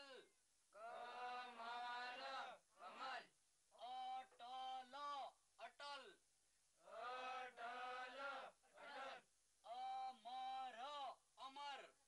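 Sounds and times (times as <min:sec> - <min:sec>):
men chanting a word together: 0:00.0 - 0:06.1, 0:06.8 - 0:12.0.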